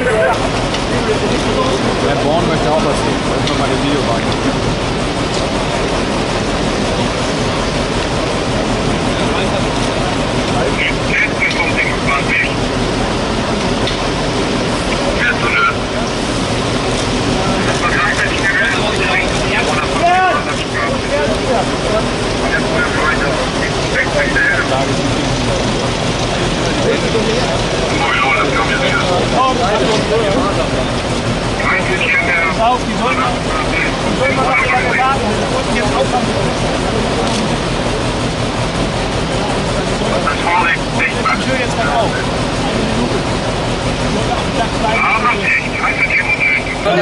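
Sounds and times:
distant voices calling out: 0:00.0 - 0:47.0
loud steady background noise: 0:00.0 - 0:47.0.

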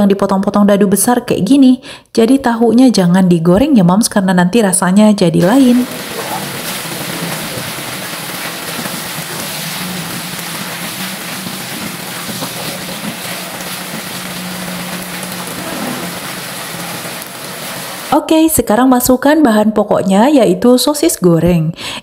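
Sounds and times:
sauce boiling and bubbling: 0:05.4 - 0:18.2.

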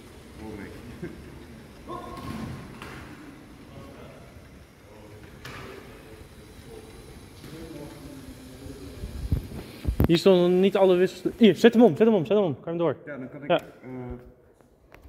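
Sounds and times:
people talking in a hall: 0:00.0 - 0:14.8.

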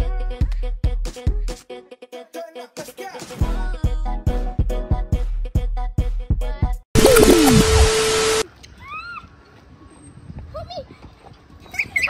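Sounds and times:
child's high-pitched squeal: 0:08.8 - 0:09.3, 0:11.7 - 0:12.0.

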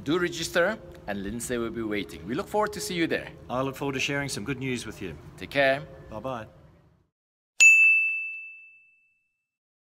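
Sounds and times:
bell-like ding: 0:07.6 - 0:09.6.

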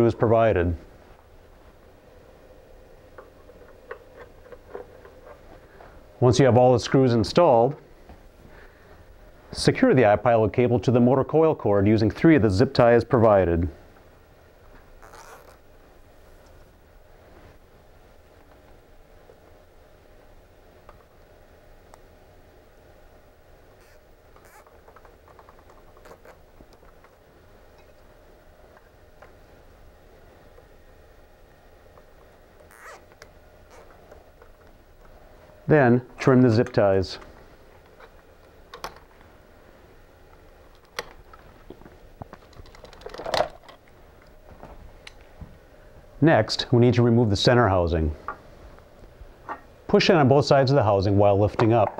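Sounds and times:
low steady hum: 0:00.0 - 0:51.9
cutters snipping zip ties: 0:32.7 - 0:33.9.

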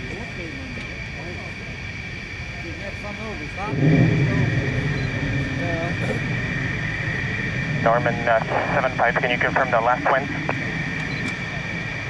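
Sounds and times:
jet engines whining: 0:00.0 - 0:12.0
low rumble: 0:01.8 - 0:12.0.

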